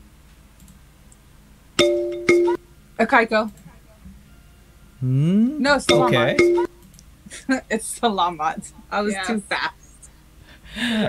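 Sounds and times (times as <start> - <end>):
bright chime ringing: 5.9 - 6.7.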